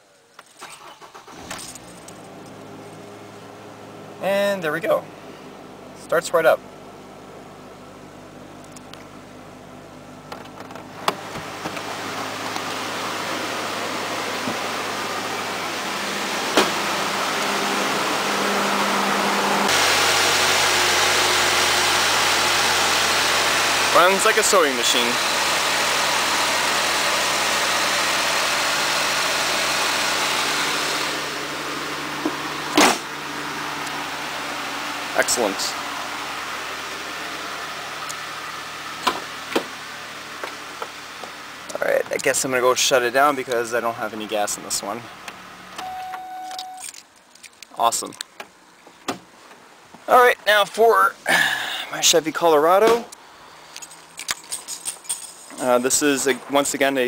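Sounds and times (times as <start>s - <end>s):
car engine idling: 0.2s - 46.0s
keys jangling: 53.7s - 55.7s.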